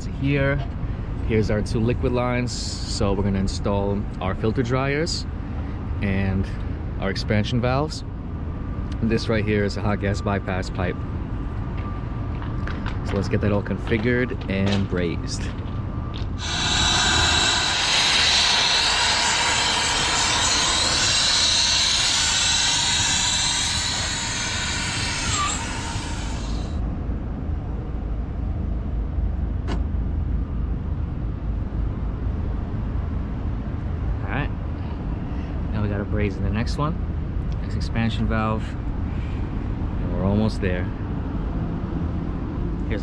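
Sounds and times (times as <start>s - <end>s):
steady low rumble: 15.4s - 41.6s
torch flame hissing: 16.4s - 26.8s.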